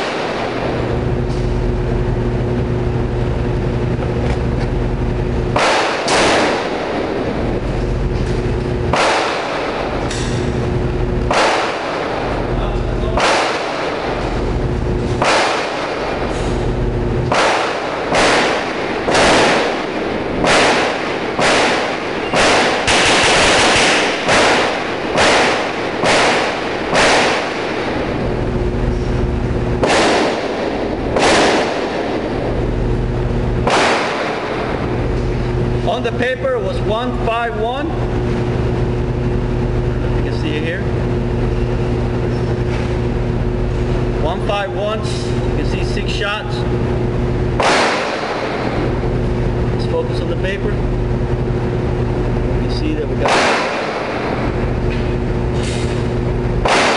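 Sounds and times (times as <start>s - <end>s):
steady low hum: 0.0s - 56.9s
handgun shots echoing: 5.5s - 7.6s, 8.9s - 10.5s, 11.3s - 12.5s, 13.1s - 14.3s, 15.2s - 16.6s, 17.3s - 28.5s, 29.8s - 32.7s, 33.6s - 35.0s, 47.6s - 49.0s, 53.2s - 55.0s, 56.6s - 56.9s.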